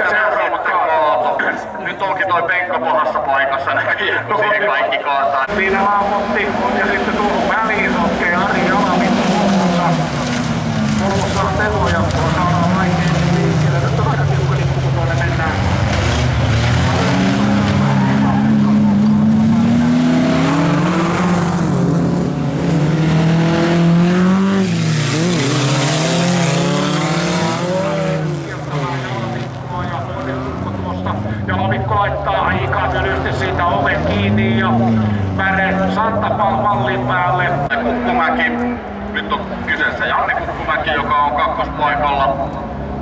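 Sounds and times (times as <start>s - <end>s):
race car engines revving: 0.0s - 43.0s
tyres on gravel: 7.2s - 18.4s.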